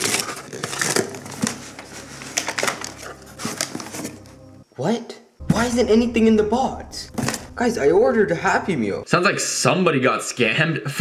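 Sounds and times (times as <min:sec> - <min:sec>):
paper wrapping being torn: 0:00.0 - 0:04.3.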